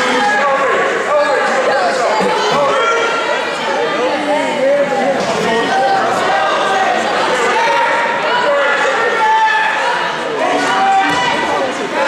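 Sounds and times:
spectators shouting in a gym: 0:00.0 - 0:12.0.

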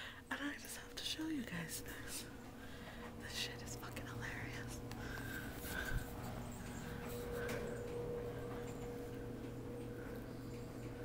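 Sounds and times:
faint steady hum: 0:00.0 - 0:11.0
woman whispering: 0:00.3 - 0:02.4, 0:03.2 - 0:05.0.

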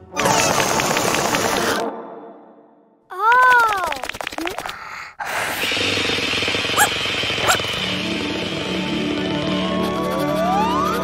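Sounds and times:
cartoon balloon inflating: 0:04.4 - 0:07.9
cartoon puppy yelps: 0:06.8 - 0:07.8.

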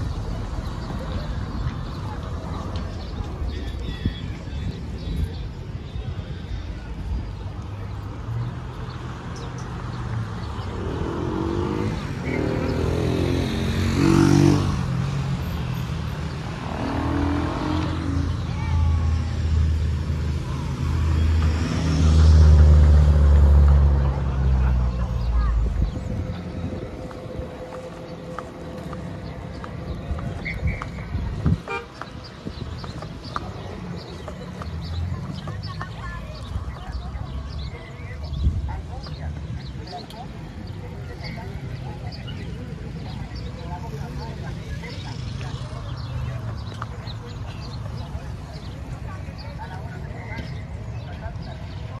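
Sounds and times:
faint voices: 0:00.0 - 0:52.0
vehicle engines passing: 0:00.0 - 0:52.0.

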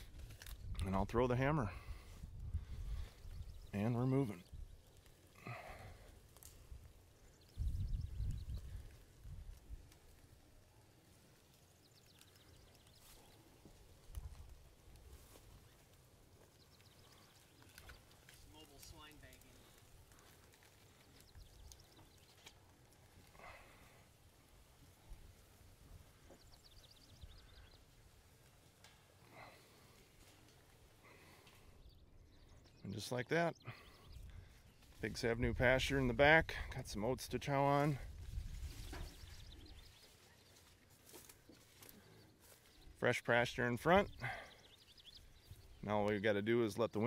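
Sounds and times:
faint livestock grunts and calls: 0:23.2 - 0:24.3.

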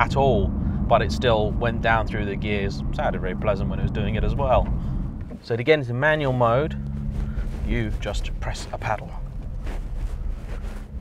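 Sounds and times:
car engine at low revs: 0:00.0 - 0:11.0
road noise: 0:00.0 - 0:11.0.

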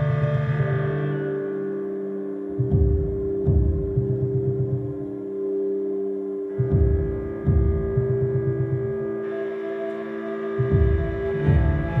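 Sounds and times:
cello bowing low notes: 0:00.0 - 0:04.2, 0:06.5 - 0:12.0.

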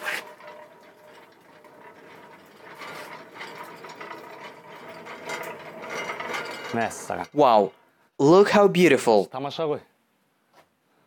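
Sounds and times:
metal rack rattling and clicking: 0:00.0 - 0:07.8.

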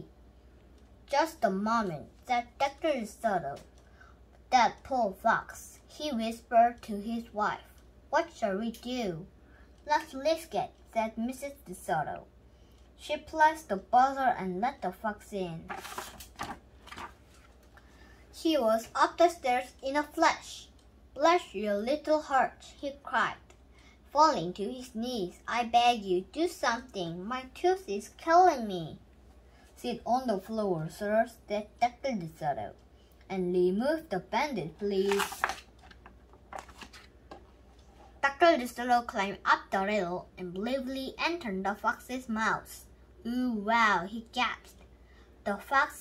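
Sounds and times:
faint low hum: 0:00.0 - 0:46.0
paper page turning: 0:15.6 - 0:17.7, 0:34.8 - 0:37.2.

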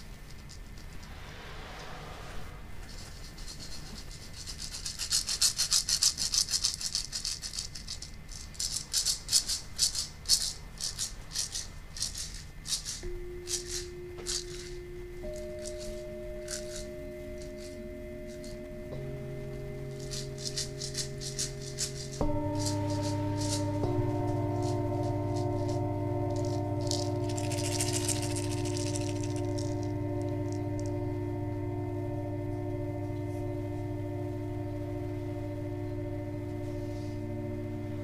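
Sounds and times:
shaker rattling: 0:00.0 - 0:01.3, 0:02.8 - 0:18.7, 0:19.8 - 0:31.0
steel drum notes: 0:12.4 - 0:38.0.

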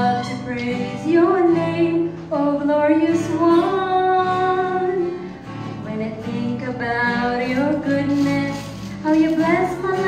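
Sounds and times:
woman singing worship song: 0:00.0 - 0:05.1, 0:05.8 - 0:10.0
strummed acoustic guitar: 0:00.0 - 0:10.0.

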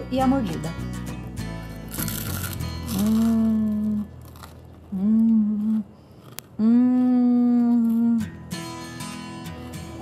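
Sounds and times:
soft acoustic guitar music: 0:00.0 - 0:06.0, 0:06.8 - 0:10.0
woman humming mmm: 0:02.8 - 0:04.2, 0:04.9 - 0:08.5.

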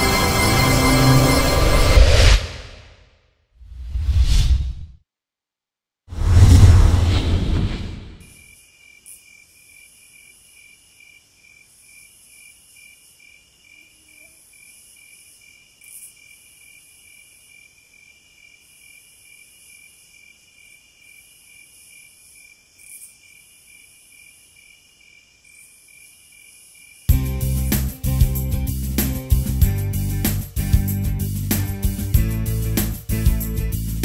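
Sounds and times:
crickets chirping: 0:08.2 - 0:27.1
high insect hiss: 0:08.2 - 0:27.1.

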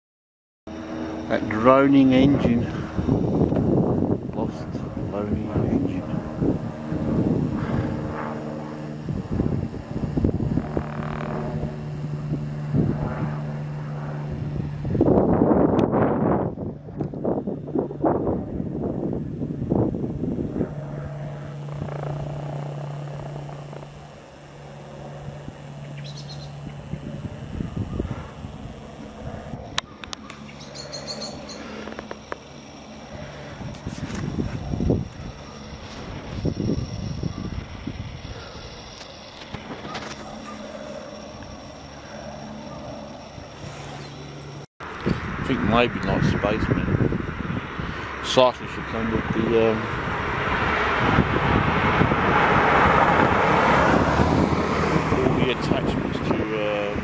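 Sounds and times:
aircraft engine droning overhead: 0:00.7 - 0:57.0
wind buffeting microphone: 0:01.5 - 0:29.8, 0:33.1 - 0:40.4, 0:44.9 - 0:57.0.

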